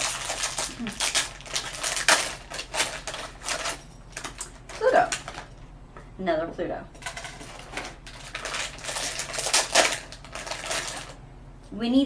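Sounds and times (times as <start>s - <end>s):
foil bag tearing open: 0.0s - 5.5s, 7.9s - 11.2s
foil bag crinkling: 0.0s - 5.6s, 7.5s - 11.2s.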